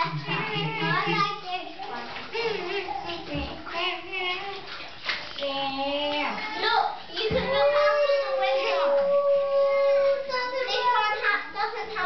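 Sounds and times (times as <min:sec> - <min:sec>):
small children's voices: 0:00.0 - 0:12.0
water sloshing in a bathtub: 0:00.0 - 0:12.0.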